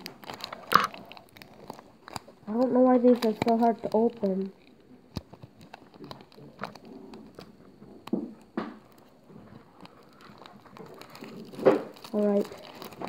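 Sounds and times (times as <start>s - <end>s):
foil wrapper crinkling: 0.0s - 7.8s, 8.4s - 13.0s
sharp wrapper crackles: 0.0s - 13.0s.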